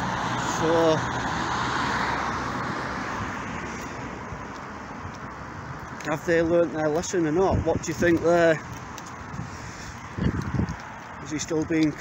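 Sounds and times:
car passing by: 0:00.0 - 0:04.5.

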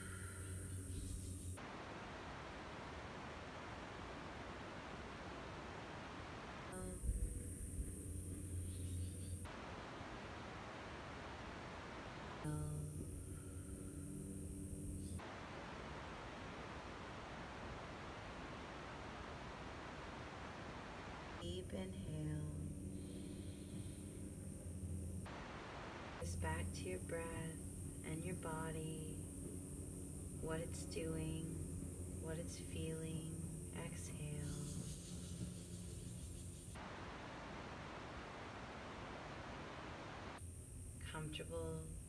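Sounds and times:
faint steady hiss: 0:00.0 - 0:42.0
low steady hum: 0:00.0 - 0:42.0.

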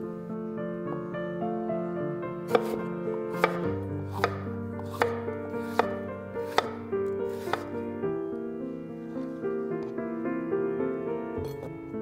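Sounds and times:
soft piano music: 0:00.0 - 0:12.0
knife knocking on cutting board: 0:04.2 - 0:06.8, 0:07.4 - 0:07.7.

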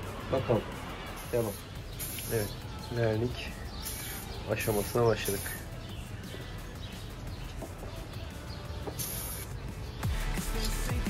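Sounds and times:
aerosol spray can hiss: 0:01.2 - 0:02.6, 0:03.8 - 0:05.7, 0:08.8 - 0:09.6.

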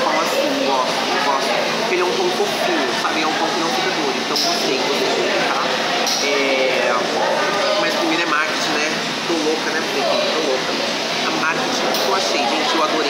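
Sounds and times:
indistinct chatter: 0:00.0 - 0:13.0
room noise: 0:00.0 - 0:13.0.

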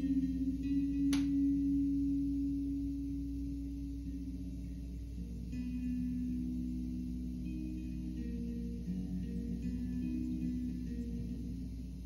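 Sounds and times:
sustained low tone: 0:00.0 - 0:12.0.

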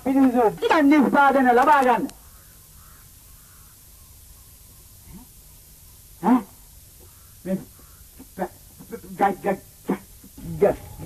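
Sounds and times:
faint distant bird calls: 0:00.0 - 0:11.0.

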